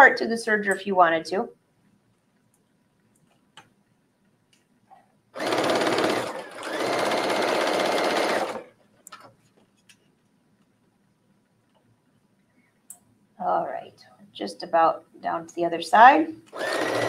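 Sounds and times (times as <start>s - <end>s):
sewing machine stitching: 5.4s - 8.8s, 16.5s - 17.0s.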